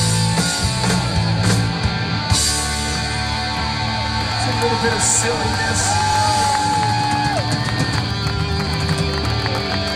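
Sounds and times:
live rock band playing: 0.0s - 9.9s.

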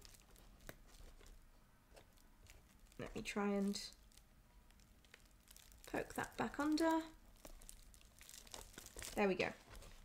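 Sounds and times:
straw crinkling: 0.0s - 10.0s.

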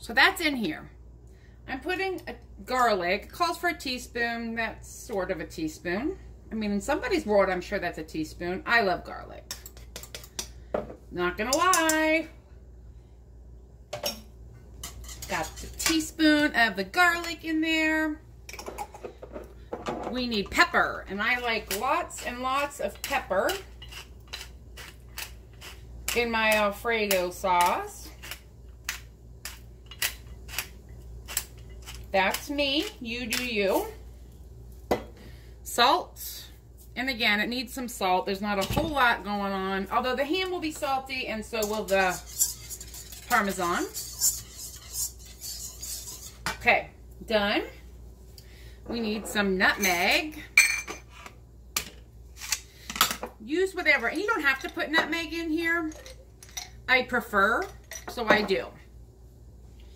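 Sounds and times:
kitchen utensils clicking and tapping: 9.5s - 10.6s, 40.3s - 46.6s
whisk scraping metal pan: 14.8s - 16.2s, 40.9s - 46.6s.

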